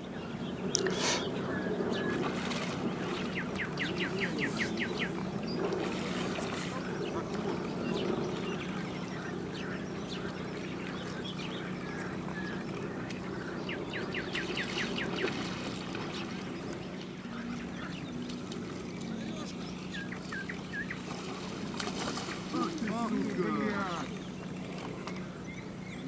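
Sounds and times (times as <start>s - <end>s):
steady low hum: 0.0s - 26.0s
fish splashing and thrashing: 21.0s - 23.5s.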